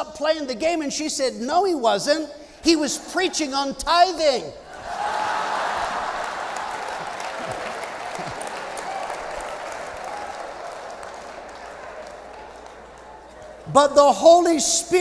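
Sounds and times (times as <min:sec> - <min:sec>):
crowd laughing: 0:04.7 - 0:13.6
crowd applauding: 0:04.7 - 0:13.7.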